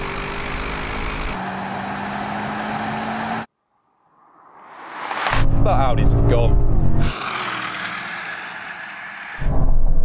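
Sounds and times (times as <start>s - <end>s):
race car engines at full throttle: 0.0s - 3.5s, 5.1s - 9.6s.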